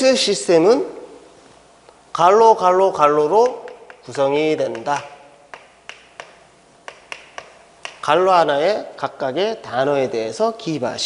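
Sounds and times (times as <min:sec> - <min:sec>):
chalk tapping on blackboard: 0:03.4 - 0:08.3.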